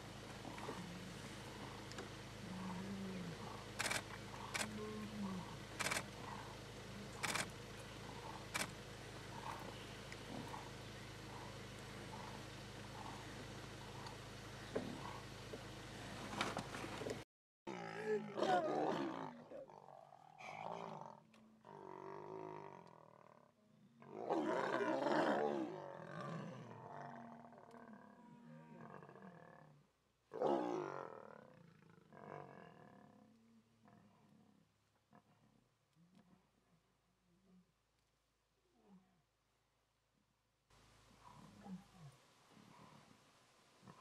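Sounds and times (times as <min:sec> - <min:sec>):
lion roaring: 0:02.4 - 0:08.7, 0:17.7 - 0:23.3, 0:24.0 - 0:29.6.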